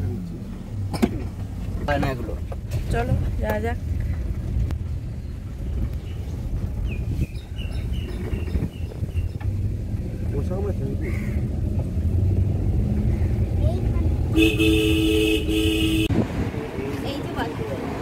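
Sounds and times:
car engine and road rumble: 0:00.0 - 0:18.0.

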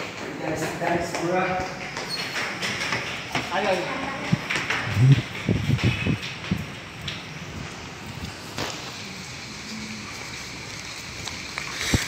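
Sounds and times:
outdoor background hiss: 0:03.8 - 0:12.0
wind rumbling on microphone: 0:04.0 - 0:08.4
low thumps: 0:04.2 - 0:06.8.

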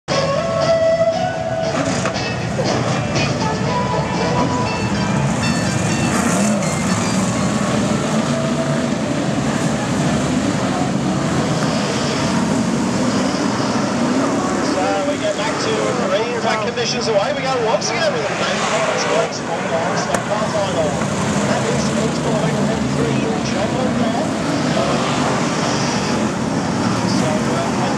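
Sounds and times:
race car engines passing: 0:00.1 - 0:27.9.

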